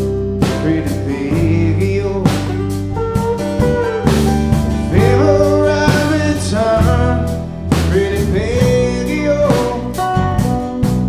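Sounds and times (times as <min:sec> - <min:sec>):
drum kit: 0:00.0 - 0:11.0
electric and acoustic guitars: 0:00.0 - 0:11.0.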